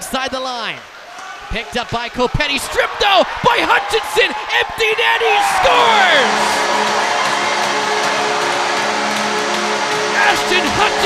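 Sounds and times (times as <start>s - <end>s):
crowd noise: 0.0s - 11.0s
goal horn long chord: 5.8s - 11.0s.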